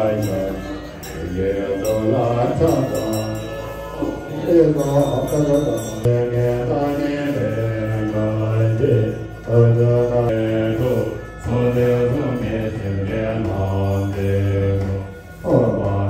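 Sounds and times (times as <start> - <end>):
men chanting long steady notes: 0.0 - 16.0.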